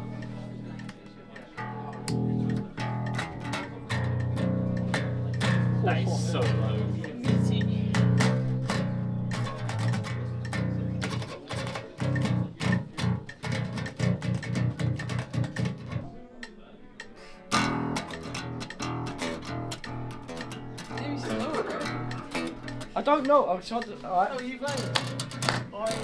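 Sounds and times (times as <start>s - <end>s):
electric bass staccato riffs: 0.0s - 16.1s, 17.5s - 26.0s.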